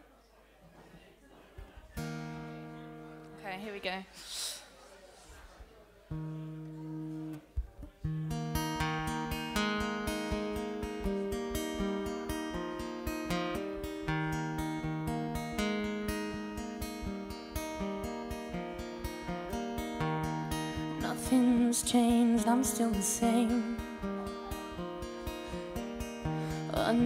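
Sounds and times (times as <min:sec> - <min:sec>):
acoustic guitar strumming: 0:02.0 - 0:03.6, 0:06.1 - 0:27.0.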